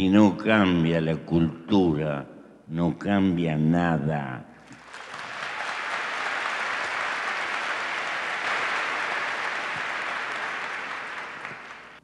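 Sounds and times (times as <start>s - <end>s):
large audience applauding: 4.7s - 12.0s.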